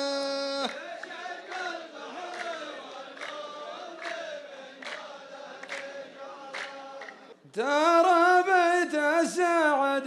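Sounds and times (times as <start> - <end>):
men chanting in unison: 0.0 - 10.0
sharp hand claps: 0.7 - 7.3.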